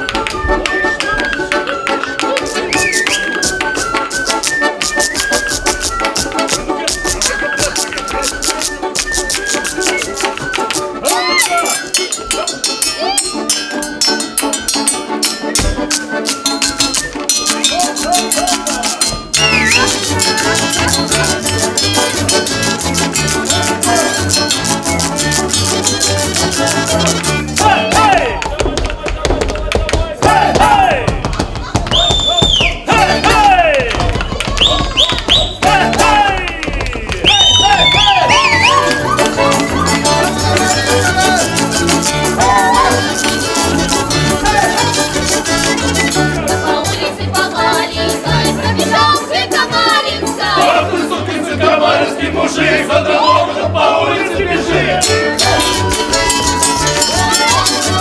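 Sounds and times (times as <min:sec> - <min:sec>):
wooden spoons clacking: 0:00.0 - 0:26.3
wooden pipes: 0:00.0 - 0:50.9
balalaikas: 0:00.0 - 0:58.0
folk ensemble dance tune: 0:00.0 - 0:58.0
shouted whoops: 0:11.0 - 0:11.8, 0:37.2 - 0:39.9, 0:42.4 - 0:43.1
wooden spoons clicking: 0:15.8 - 0:24.8
high sliding whistles: 0:19.4 - 0:20.0, 0:37.3 - 0:41.3.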